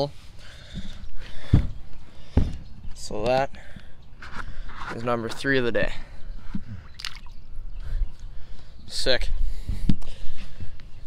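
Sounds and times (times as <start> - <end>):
fish splashing into water: 7.0 - 7.4.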